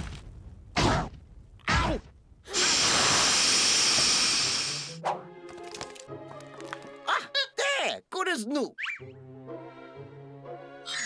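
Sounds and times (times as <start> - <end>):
cartoon hiss: 2.5 - 5.0.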